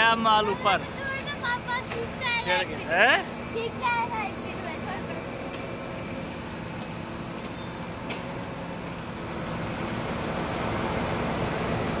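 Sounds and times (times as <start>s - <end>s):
crane diesel engine running: 0.0s - 12.0s.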